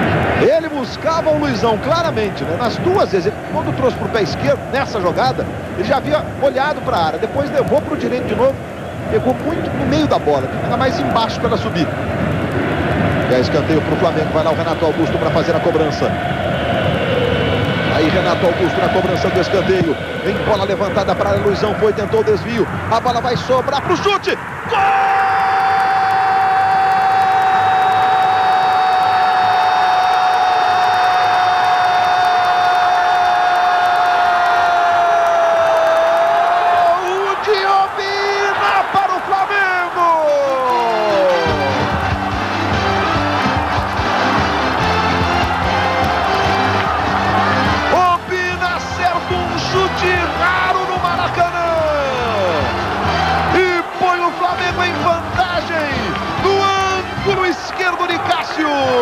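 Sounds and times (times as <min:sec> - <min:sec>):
stadium crowd cheering: 0:00.0 - 0:59.0
commentator shouting: 0:36.7 - 0:41.9, 0:47.8 - 0:59.0.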